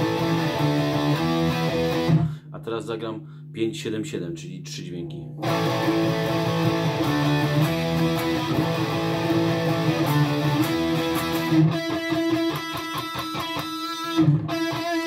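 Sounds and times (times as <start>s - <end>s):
electric guitar power chords: 0.0s - 2.5s, 5.2s - 15.0s.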